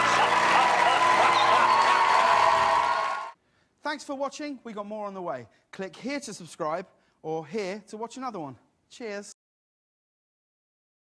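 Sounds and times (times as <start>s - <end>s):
audience cheering and applauding: 0.0s - 3.4s.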